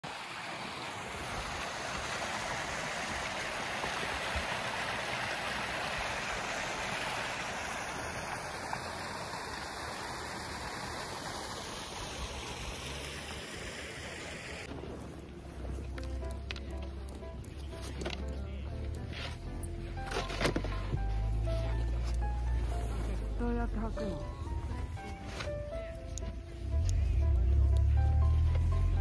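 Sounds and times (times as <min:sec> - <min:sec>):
creek running over rocks: 0:00.0 - 0:29.0.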